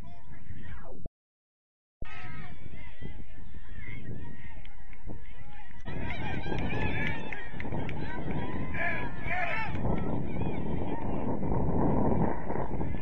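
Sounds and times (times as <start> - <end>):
wind rumbling on microphone: 2.0 - 13.0.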